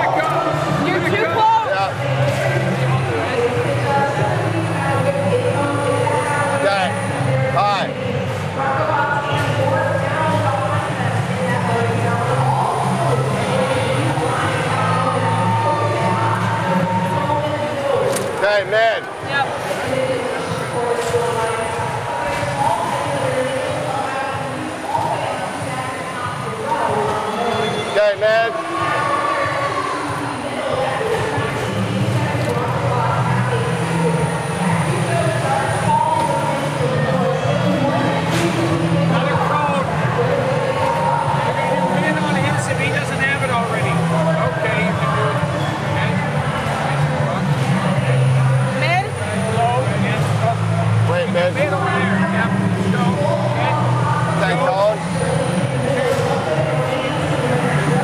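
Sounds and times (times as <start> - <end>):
crowd noise bursts: 0.0 - 58.0
many overlapping voices: 0.0 - 58.0.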